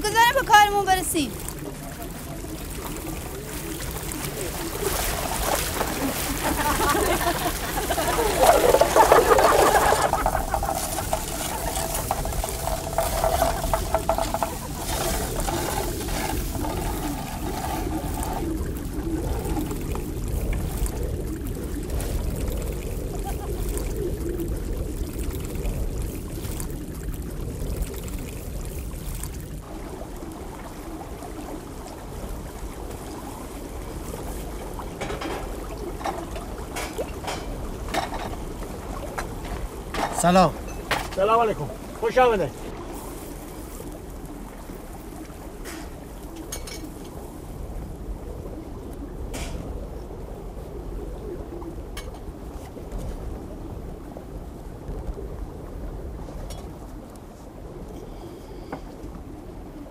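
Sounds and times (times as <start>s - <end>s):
water trickling in stone channel: 0.0s - 47.9s.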